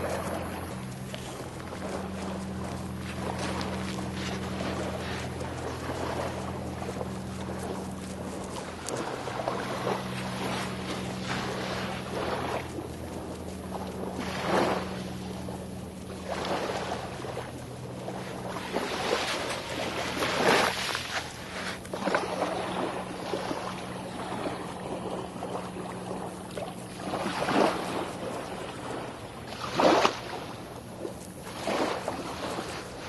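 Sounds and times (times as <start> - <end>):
low hum: 0.0 - 33.0
surf washing on beach: 0.0 - 33.0.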